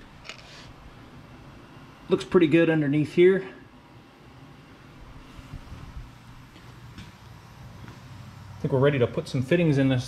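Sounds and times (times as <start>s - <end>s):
camera handling rumble: 0.2s - 0.5s.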